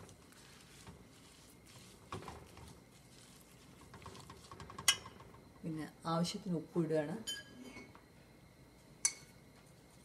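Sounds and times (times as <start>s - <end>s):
spoon stirring leaves in pot: 0.0s - 5.7s.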